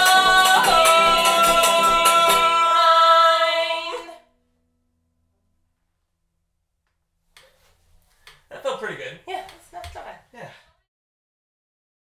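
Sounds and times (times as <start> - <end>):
banjo strumming: 0.0 - 4.1
two voices singing folk song: 0.0 - 4.2.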